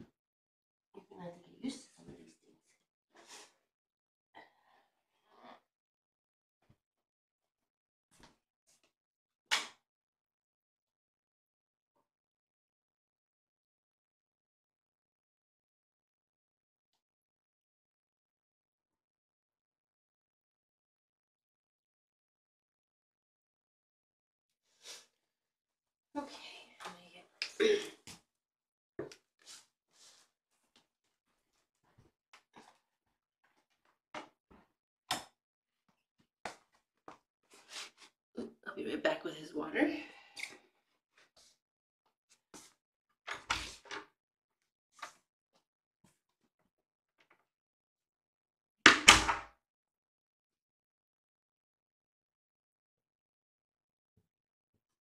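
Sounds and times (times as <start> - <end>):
person talking: 38.4 - 40.1.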